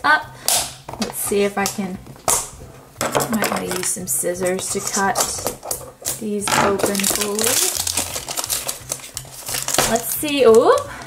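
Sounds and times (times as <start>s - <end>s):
plastic wrapper crinkling: 6.8s - 11.0s.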